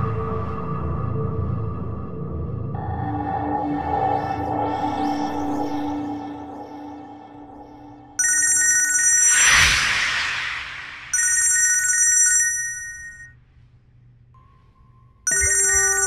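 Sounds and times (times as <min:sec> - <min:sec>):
phone ringtone warbling: 0:08.2 - 0:09.6, 0:11.1 - 0:13.3, 0:15.3 - 0:16.0
loud whooshing rush: 0:09.3 - 0:11.2.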